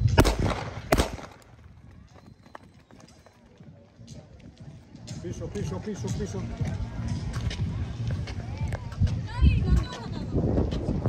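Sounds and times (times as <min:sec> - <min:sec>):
starting pistol shots: 0:00.0 - 0:01.7
outdoor background noise: 0:00.0 - 0:11.0.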